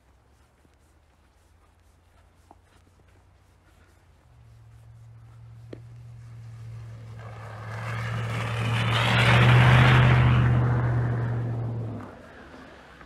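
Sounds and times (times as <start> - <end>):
tyre noise on snowy road: 0.0 - 13.0
truck engine hum: 4.2 - 13.0.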